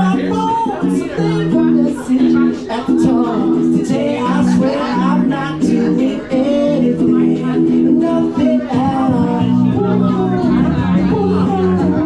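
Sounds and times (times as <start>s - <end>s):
man singing karaoke: 0.0s - 12.0s
pop backing track: 0.0s - 12.0s.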